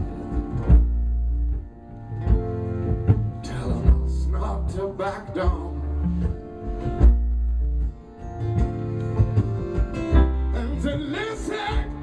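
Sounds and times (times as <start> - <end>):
live band guitars: 0.0 - 12.0.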